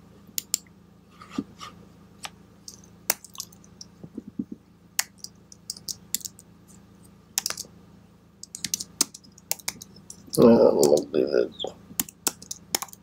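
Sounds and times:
faint steady hum: 0.0s - 13.0s
typing on computer keyboard: 7.4s - 7.7s, 8.4s - 11.1s, 12.0s - 13.0s.

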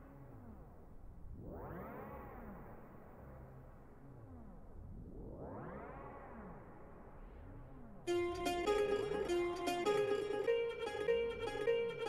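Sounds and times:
low synthesizer bed: 8.1s - 12.0s.

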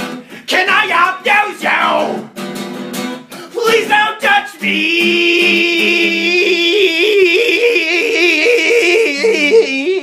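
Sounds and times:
strummed acoustic guitar: 0.0s - 9.6s.

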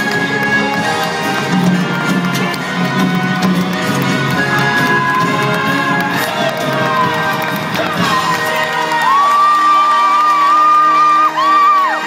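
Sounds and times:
circus music: 0.0s - 12.0s
audience cheering: 4.4s - 12.0s.

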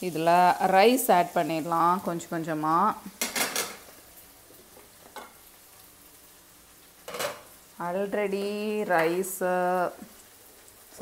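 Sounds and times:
metal cookware clattering: 3.2s - 3.9s, 5.1s - 5.4s, 7.1s - 7.5s.

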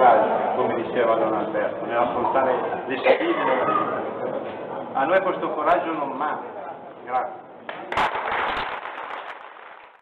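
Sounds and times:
audience applauding: 7.9s - 10.0s.

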